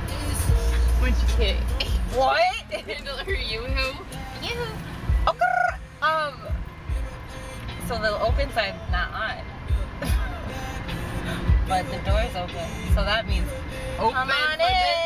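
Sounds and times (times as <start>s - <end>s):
car radio music: 0.0s - 15.0s.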